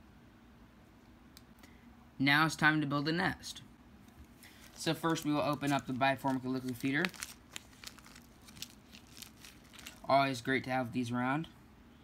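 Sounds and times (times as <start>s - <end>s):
plastic bag crinkling: 4.2s - 10.5s.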